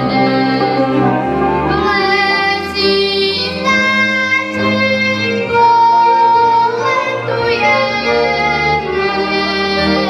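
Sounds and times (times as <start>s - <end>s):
boy singing folk song: 0.0s - 1.0s, 1.7s - 10.0s.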